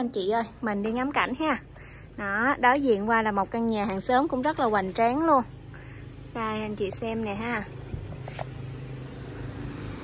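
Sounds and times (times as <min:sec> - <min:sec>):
vehicle engine hum: 0:00.0 - 0:10.0.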